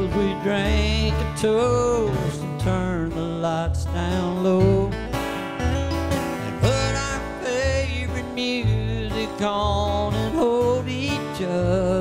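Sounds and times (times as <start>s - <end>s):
acoustic guitars strumming: 0.0s - 12.0s
upright bass plucking low notes: 0.0s - 12.0s.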